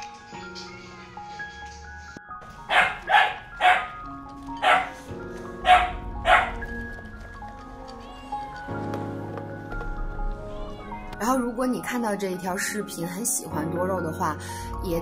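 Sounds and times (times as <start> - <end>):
background music: 0.0 - 15.0
dog barking: 2.6 - 6.7.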